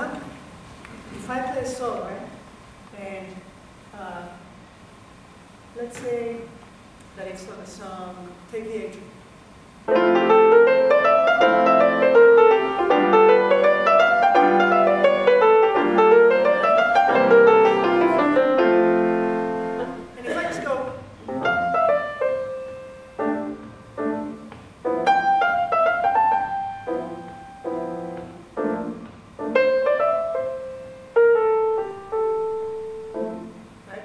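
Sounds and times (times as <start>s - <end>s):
jazz piano playing: 9.9s - 34.0s.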